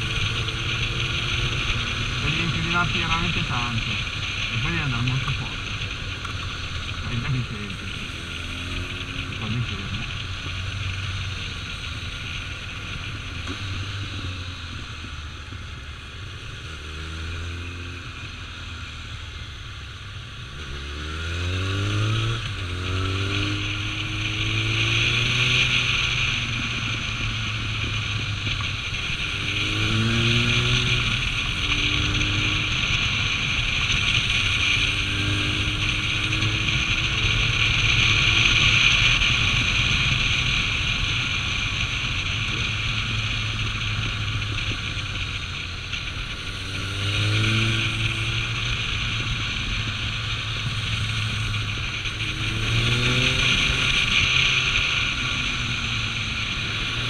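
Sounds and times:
motorcycle engine: 0.0s - 57.0s.

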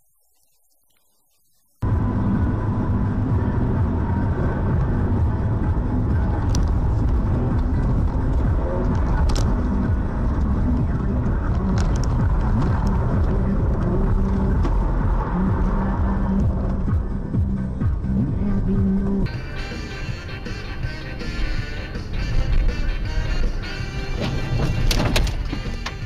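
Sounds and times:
car engine and road noise: 1.6s - 26.0s.

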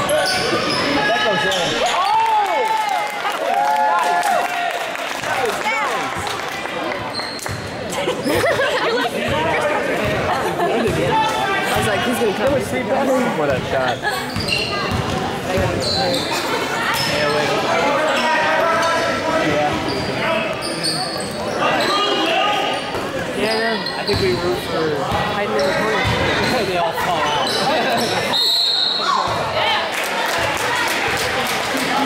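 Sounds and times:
spectators talking: 0.0s - 32.0s.

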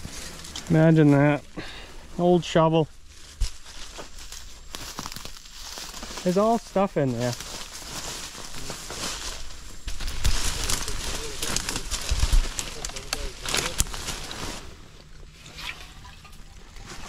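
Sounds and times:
leaves and twigs rustling: 0.0s - 17.0s.

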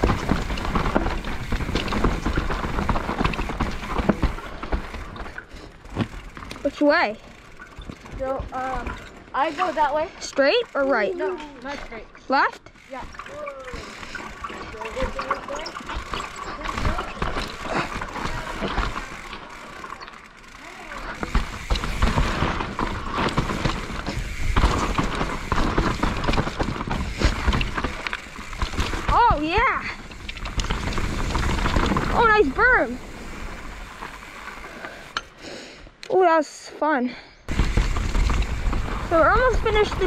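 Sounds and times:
bike frame and chain rattling: 0.0s - 35.8s, 37.5s - 40.0s
bike tyres on dirt: 0.0s - 40.0s.

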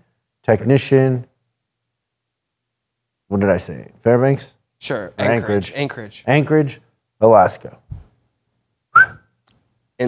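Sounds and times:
rising whistled chirp: 8.9s - 9.3s.

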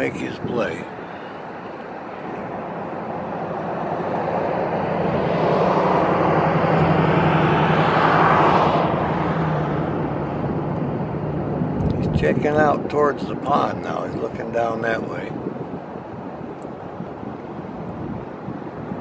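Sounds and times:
passing vehicle engine: 0.9s - 12.1s.

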